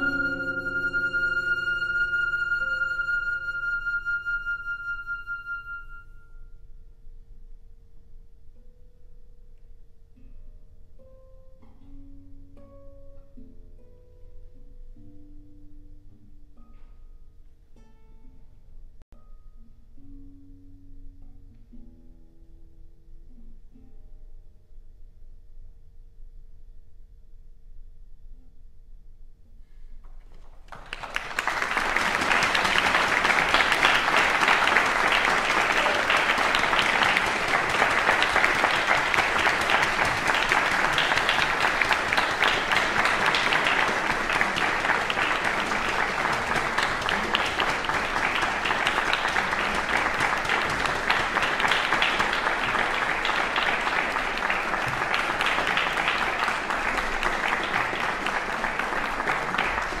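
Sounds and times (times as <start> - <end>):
audience applauding: 0.0 - 6.0, 30.4 - 60.0.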